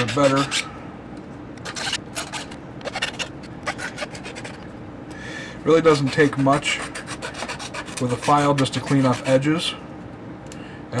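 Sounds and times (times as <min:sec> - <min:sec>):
hand file scraping plastic: 0:00.0 - 0:00.6, 0:01.6 - 0:04.6, 0:05.8 - 0:09.5.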